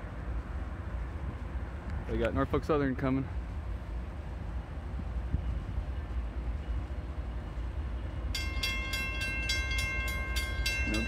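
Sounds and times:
crossing warning bell ringing: 8.1 - 11.0.

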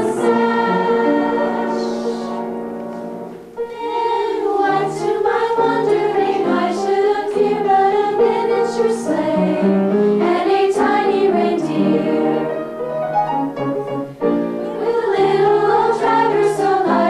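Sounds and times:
girls' choir singing: 0.0 - 12.9, 14.6 - 17.0.

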